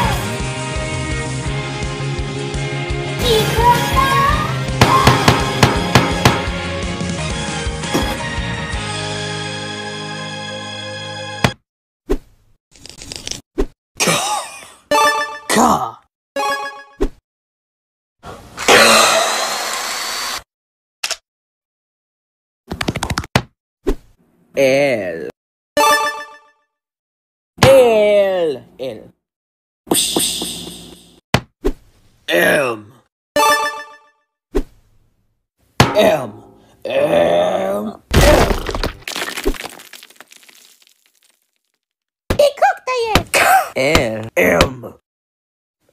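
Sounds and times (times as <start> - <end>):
rock crumbling and debris falling: 38.1 - 41.8.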